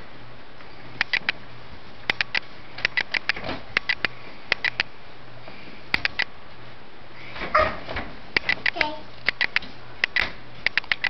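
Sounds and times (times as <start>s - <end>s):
sharp clicks: 1.0s - 1.4s, 2.0s - 4.9s, 5.9s - 6.3s, 8.4s - 11.0s.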